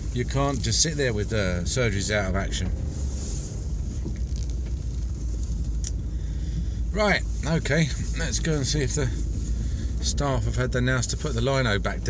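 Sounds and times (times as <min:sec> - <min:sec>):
van engine rumble: 0:00.0 - 0:12.0.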